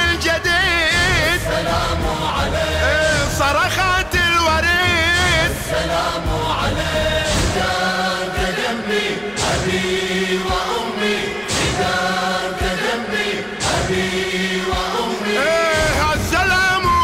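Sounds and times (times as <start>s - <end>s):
male choir chanting: 0.0s - 17.0s
heavy beat: 9.4s - 13.0s, 13.6s - 17.0s.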